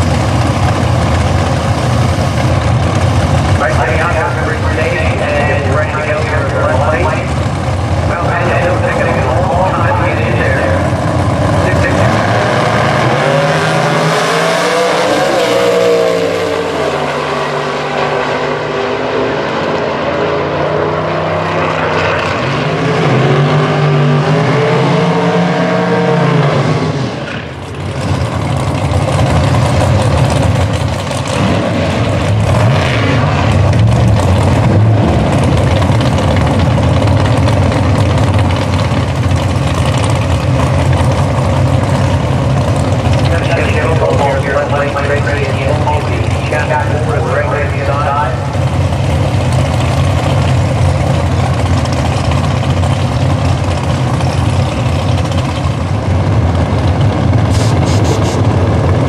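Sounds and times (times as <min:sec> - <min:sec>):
drag car engines revving: 0:00.0 - 0:59.0.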